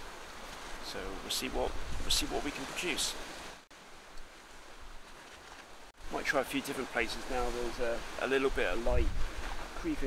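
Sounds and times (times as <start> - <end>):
light wind: 0.0 - 10.0.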